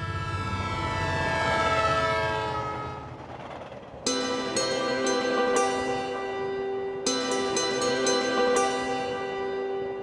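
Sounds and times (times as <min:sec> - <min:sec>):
locomotive horn: 0:00.0 - 0:03.3
low rumble of train: 0:00.0 - 0:10.0.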